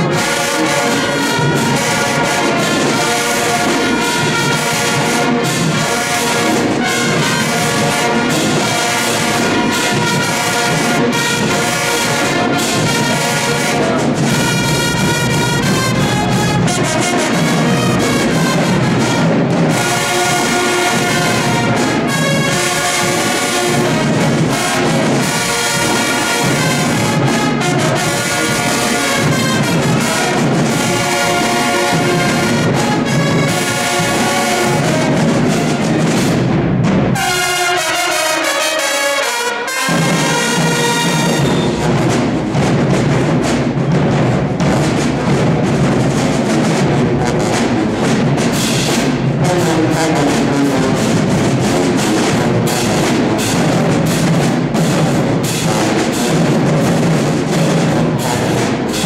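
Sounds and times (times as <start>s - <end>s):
marching band brass playing: 0.0s - 59.0s.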